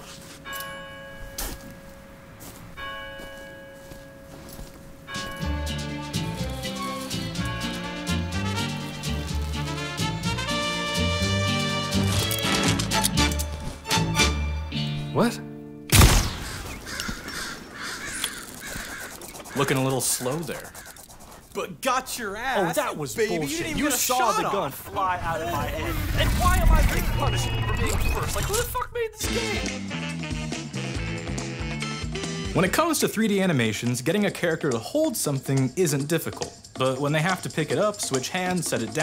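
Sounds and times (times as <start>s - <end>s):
revolver gunshot: 15.9s - 16.9s
crows cawing: 16.3s - 21.5s.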